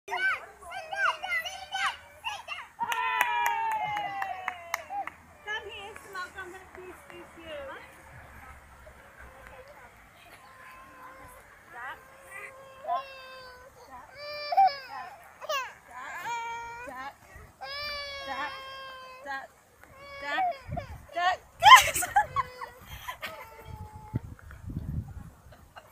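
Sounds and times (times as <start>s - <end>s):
children calling out and squealing: 0.1s - 6.0s, 9.2s - 24.4s.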